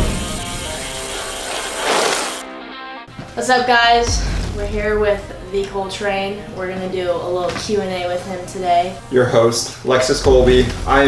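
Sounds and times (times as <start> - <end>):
intro music: 0.0 - 3.2, 3.8 - 11.0.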